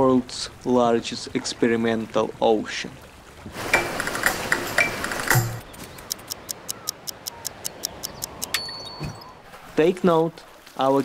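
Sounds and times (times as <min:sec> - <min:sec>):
water churning and splashing: 0:00.5 - 0:08.5, 0:09.4 - 0:11.0
rapid mechanical ticking: 0:03.7 - 0:08.6.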